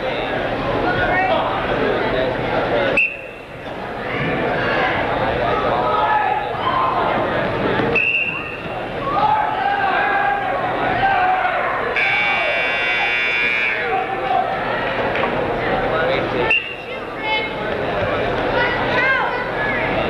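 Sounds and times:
crowd chatter and shouting: 0.0 - 20.0
electronic timing buzzer: 12.0 - 13.9.

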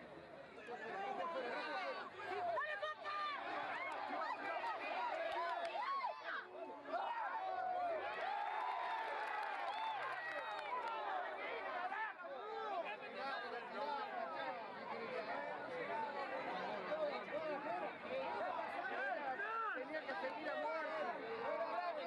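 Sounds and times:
crowd shouting: 0.7 - 22.0.

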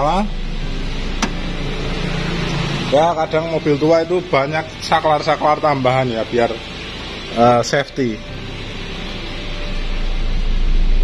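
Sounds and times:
idling car cabin hum: 0.0 - 11.0.

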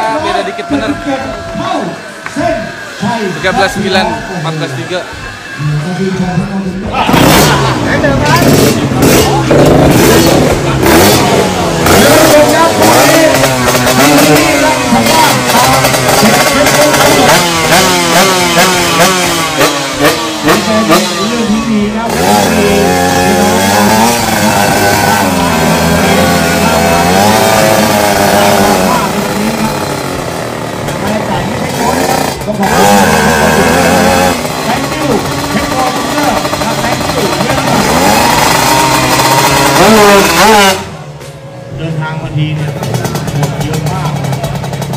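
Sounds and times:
motorcycles revving: 0.0 - 44.9.

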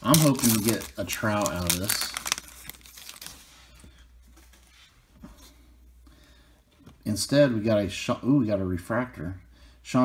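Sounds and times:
foil wrapper tearing and crinkling: 0.0 - 3.4
cards rustling: 0.0 - 4.7.

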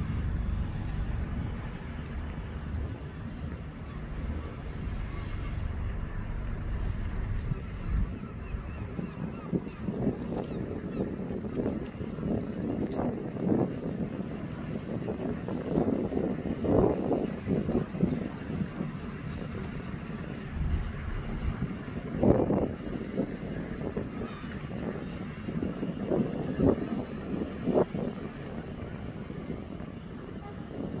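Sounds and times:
harbour ambience rumble: 0.0 - 31.0
wind buffeting microphone: 0.0 - 31.0.

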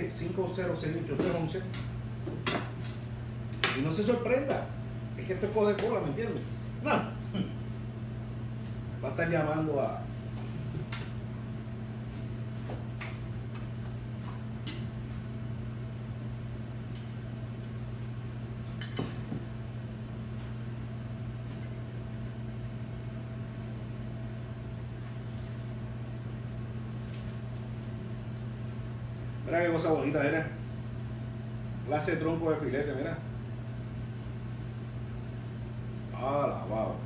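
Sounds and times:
kitchen equipment humming: 0.0 - 37.0.

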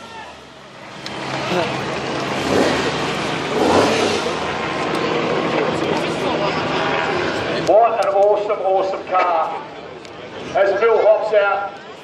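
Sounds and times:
car engine running low: 0.6 - 7.7.

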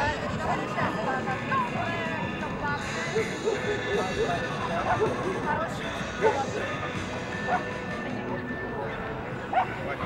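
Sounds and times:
people chattering: 0.0 - 10.0
dog barking: 6.2 - 6.5, 7.4 - 7.7, 9.5 - 9.8.

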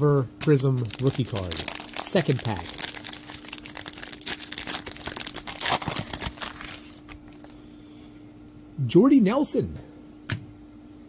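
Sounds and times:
foil wrapper crinkling: 0.6 - 7.6.

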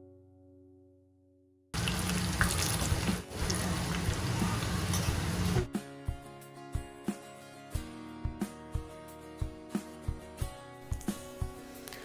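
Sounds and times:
hot oil sizzling and crackling: 1.8 - 5.7.

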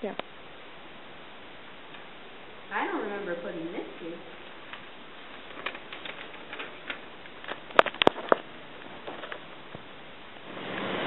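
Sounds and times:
paper map crackling: 4.0 - 9.7.

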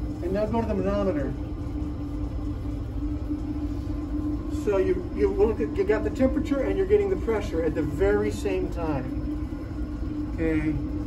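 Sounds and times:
low machine rumble: 0.0 - 11.0
mid-pitched machine tone: 0.0 - 11.0.

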